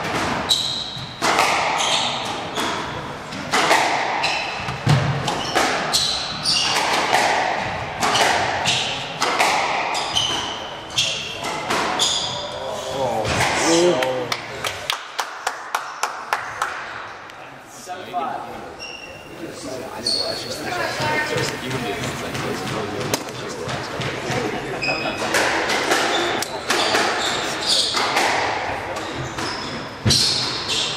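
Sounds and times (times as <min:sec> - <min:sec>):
shoes squeaking on wooden floor: 0:04.2 - 0:07.0, 0:09.9 - 0:12.6, 0:18.6 - 0:28.2, 0:29.0 - 0:30.9
spectators talking quietly: 0:16.4 - 0:30.0.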